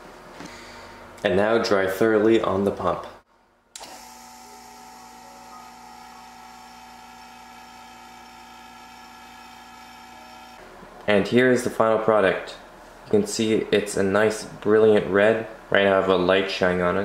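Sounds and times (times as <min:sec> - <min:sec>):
vacuum pump humming: 0:03.8 - 0:10.8.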